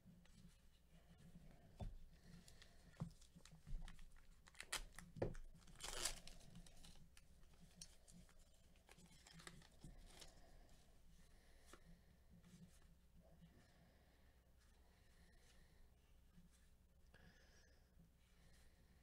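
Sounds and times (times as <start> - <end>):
wrapper crinkling tear: 4.4 - 7.0, 8.9 - 10.2.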